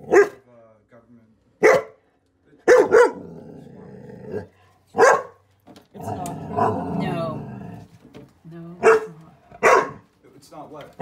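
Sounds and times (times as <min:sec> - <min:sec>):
dog barking: 0:00.0 - 0:00.4, 0:01.6 - 0:02.0, 0:02.6 - 0:03.2, 0:04.3 - 0:05.4, 0:08.8 - 0:10.1.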